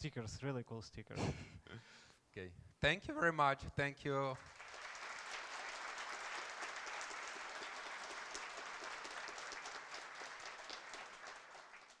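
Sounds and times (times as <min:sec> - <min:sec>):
audience applause: 0:04.4 - 0:12.0.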